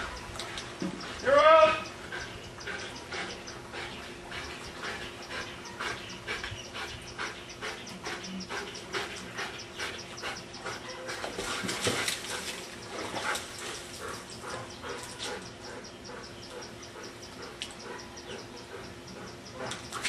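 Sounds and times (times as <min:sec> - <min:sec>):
dog panting: 0:01.8 - 0:20.0.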